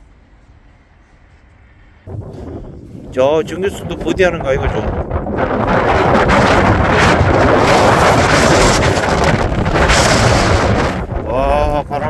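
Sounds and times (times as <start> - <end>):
wind buffeting microphone: 2.0 - 12.0.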